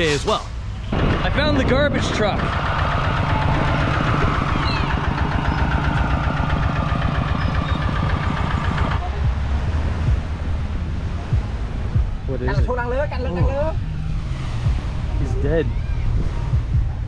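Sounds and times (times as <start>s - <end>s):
low steady rumble: 0.5s - 17.0s
diesel engine chugging: 0.6s - 10.7s.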